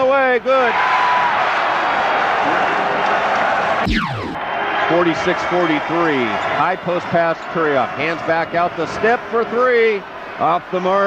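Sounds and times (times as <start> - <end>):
arena crowd cheering: 0.0 - 11.0
downward pitch sweep: 3.8 - 4.5
radio basketball commentary: 3.9 - 11.0.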